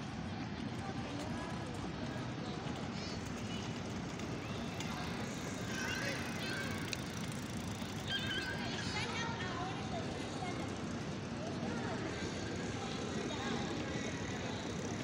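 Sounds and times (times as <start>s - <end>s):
faint distant voices: 0.0s - 15.0s
high-pitched calls: 8.0s - 9.0s.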